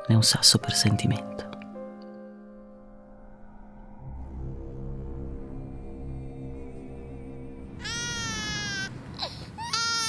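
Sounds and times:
low sustained music: 0.0s - 10.0s
infant crying: 7.8s - 10.0s.

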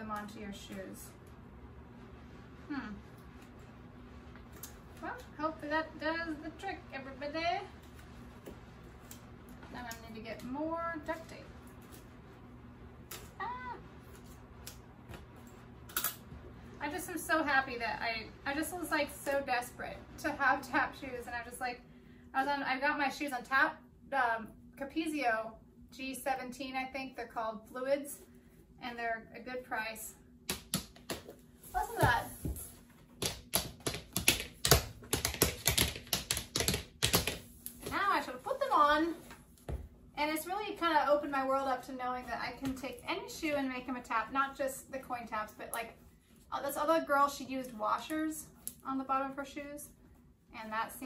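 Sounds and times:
tap shoes clicking on board: 33.2s - 37.4s.

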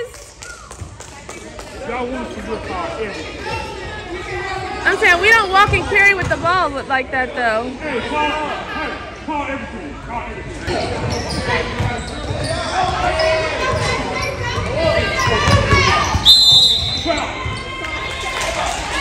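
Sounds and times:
voices echoing in gym: 0.0s - 19.0s
high steady whistle: 16.2s - 17.2s.

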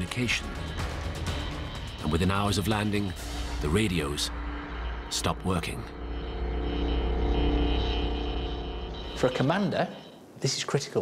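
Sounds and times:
low drone with held tones: 0.0s - 10.3s.

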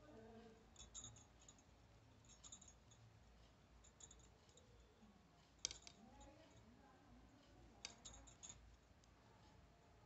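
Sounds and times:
knitting needles clicking: 5.4s - 6.6s, 7.4s - 9.2s.

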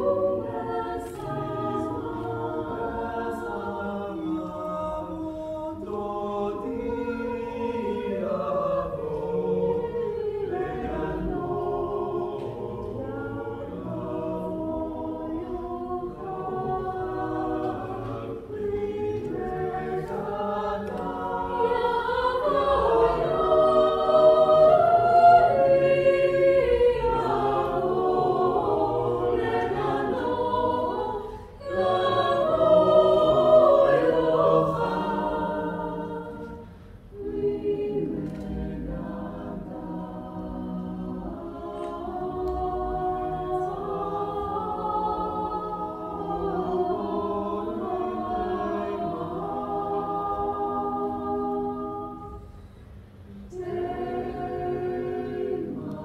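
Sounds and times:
choir singing a cappella: 0.0s - 56.0s
singers breathing: 31.2s - 31.6s, 36.6s - 37.1s.

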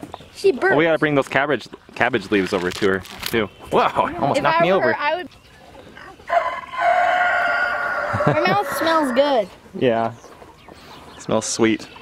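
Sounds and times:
rooster crowing: 6.0s - 9.4s.

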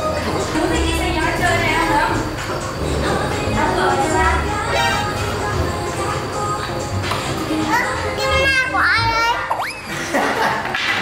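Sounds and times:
girl speaking: 7.6s - 9.5s.

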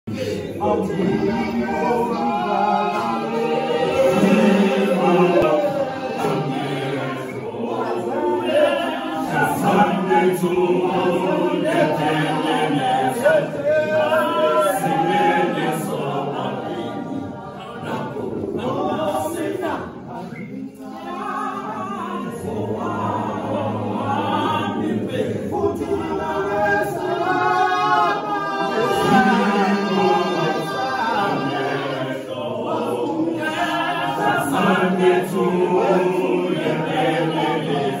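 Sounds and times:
male choir singing in harmony: 0.1s - 38.0s.

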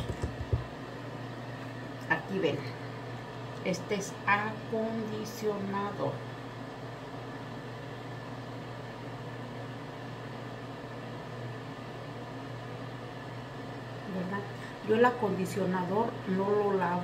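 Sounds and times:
steady low hum with hiss: 0.0s - 17.0s.

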